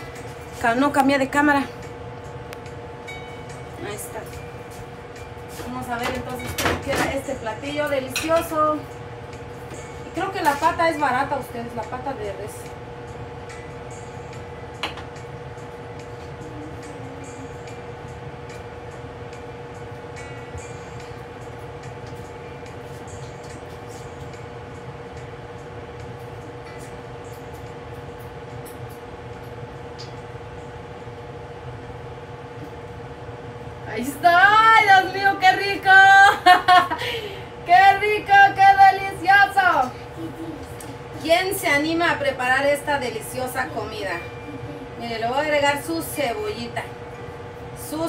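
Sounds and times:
kitchen vent fan humming: 0.0s - 48.0s
woman's voice: 0.6s - 1.8s, 3.8s - 4.4s, 5.6s - 8.9s, 10.0s - 12.8s, 33.8s - 40.0s, 41.1s - 47.0s, 47.8s - 48.0s.

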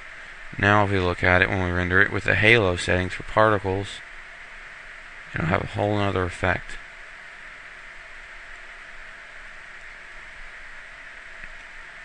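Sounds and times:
recording hiss: 0.0s - 12.0s.

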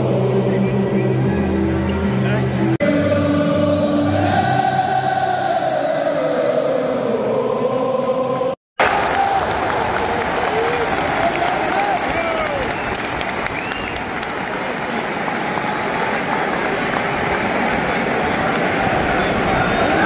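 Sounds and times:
crowd singing: 0.0s - 8.6s, 16.7s - 20.0s
crowd shouts: 8.8s - 12.9s, 15.0s - 20.0s
crowd clapping: 8.8s - 20.0s.

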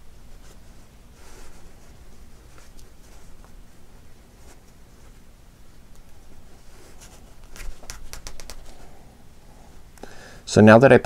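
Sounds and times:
faint handling rustle: 0.0s - 10.0s.

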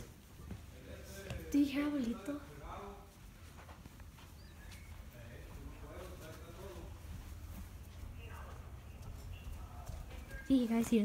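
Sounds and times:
distant voices talking: 0.0s - 11.0s.

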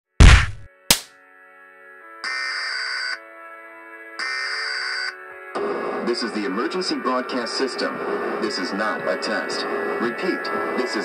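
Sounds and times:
heavy hit: 0.2s - 1.0s
sharp click: 0.2s - 1.1s.

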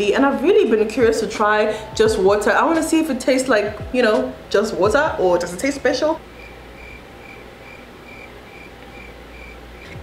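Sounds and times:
cricket chirping: 6.4s - 10.0s.

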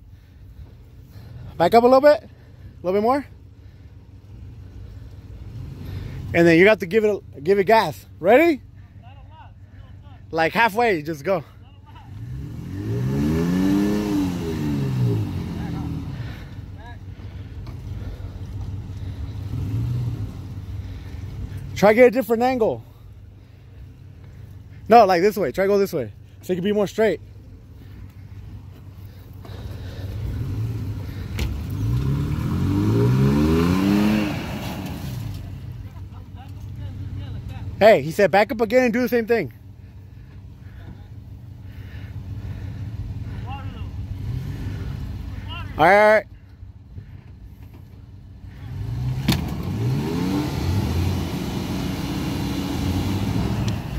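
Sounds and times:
truck engine revving: 12.1s - 27.2s, 27.8s - 45.8s, 48.4s - 53.9s.

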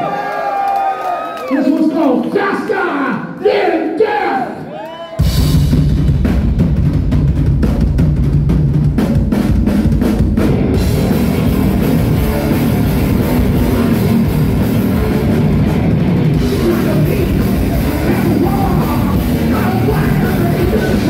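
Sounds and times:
drum hits: 5.2s - 21.0s
thrash metal band playing live: 5.2s - 21.0s.

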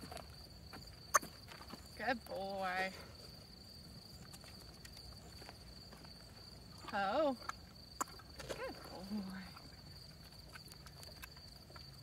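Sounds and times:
horse chewing: 4.2s - 12.0s.

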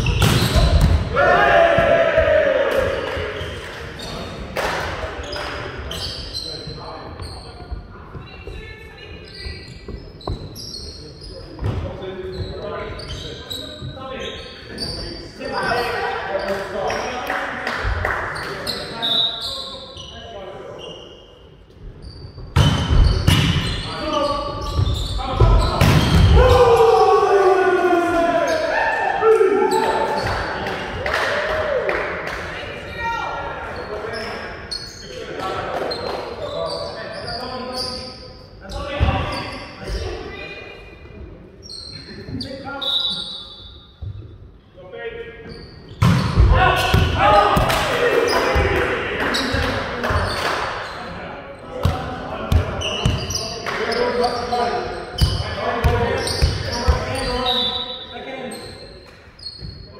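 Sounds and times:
volleyball hits and bounces: 0.0s - 1.1s, 25.7s - 26.5s
players shouting: 1.0s - 3.5s, 25.6s - 32.0s.

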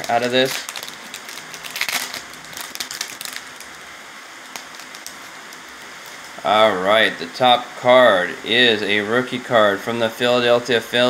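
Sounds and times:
cards rustling: 0.0s - 3.8s, 4.5s - 6.4s
plastic foil wrapper crinkling: 0.0s - 3.8s, 4.4s - 6.4s.

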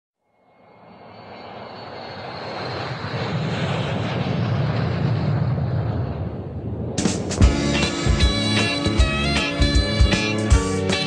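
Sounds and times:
faint high whine: 0.3s - 4.0s
aircraft engine noise: 0.5s - 11.0s.

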